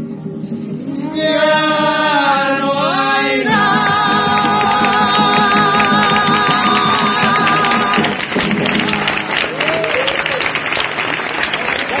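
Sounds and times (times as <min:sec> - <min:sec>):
choir singing with guitars: 0:00.7 - 0:09.6
audience applauding: 0:03.6 - 0:12.0
audience shouts: 0:08.8 - 0:10.7.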